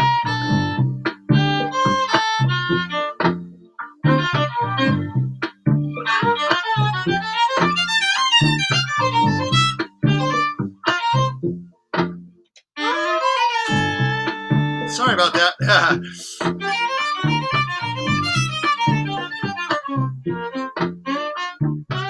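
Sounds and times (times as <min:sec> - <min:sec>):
violin with octave effect: 0:00.0 - 0:03.2, 0:04.0 - 0:11.5, 0:12.8 - 0:22.0
low rhythmic pulse: 0:13.7 - 0:21.0.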